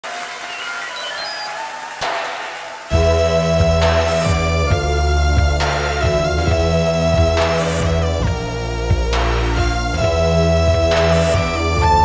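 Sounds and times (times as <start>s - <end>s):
high synthesizer bleeps: 0.1s - 12.0s
steady synthesizer hiss: 1.6s - 12.0s.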